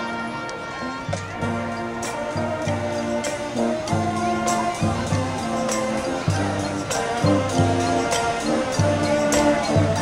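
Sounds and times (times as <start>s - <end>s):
marching band brass: 0.0s - 10.0s.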